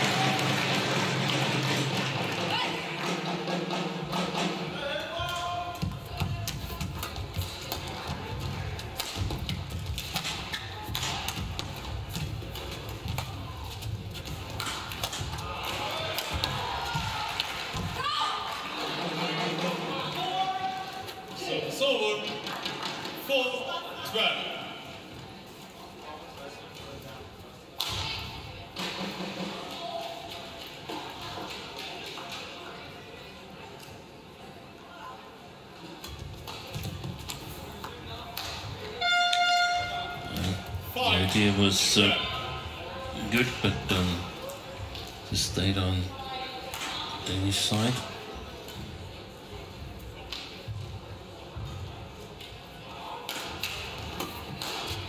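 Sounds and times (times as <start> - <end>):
music in hall: 0.0 - 5.6
voices in hall: 0.0 - 55.0.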